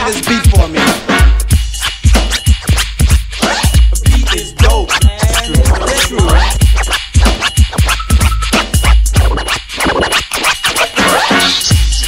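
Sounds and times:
hip-hop drum beat: 0.0 - 12.0
turntable scratching: 0.0 - 12.0.

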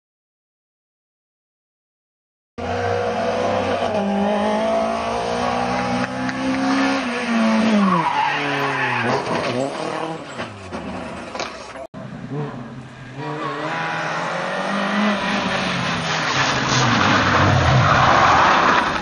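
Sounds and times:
rally car engine revving: 2.6 - 19.0.

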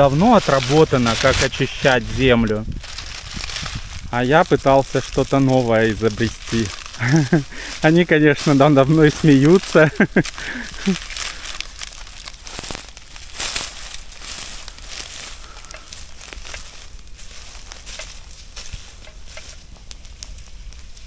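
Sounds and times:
dry leaves crackling in fire: 0.0 - 21.0.

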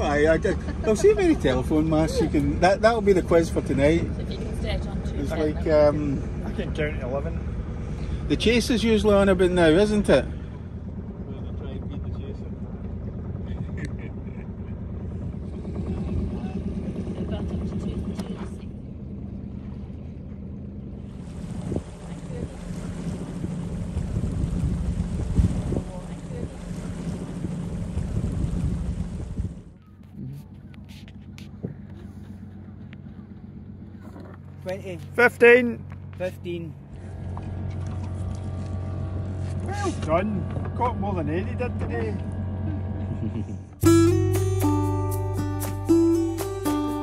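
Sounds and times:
boat engine humming: 0.0 - 47.0.

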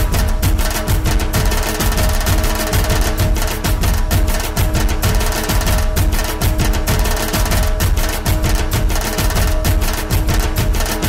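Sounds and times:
dhol drums: 0.0 - 11.0
held tone of music: 0.0 - 11.0.

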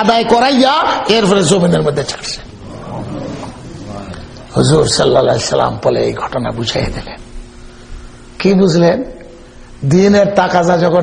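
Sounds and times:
man speaking: 0.0 - 7.3.

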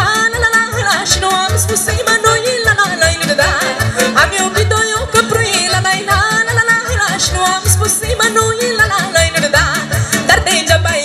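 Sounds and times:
folk band over stage speakers: 0.0 - 11.0.

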